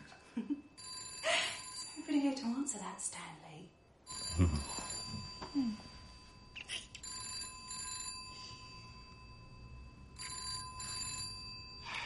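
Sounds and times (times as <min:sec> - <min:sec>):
telephone ringing: 0:00.8 - 0:02.1, 0:04.1 - 0:12.0.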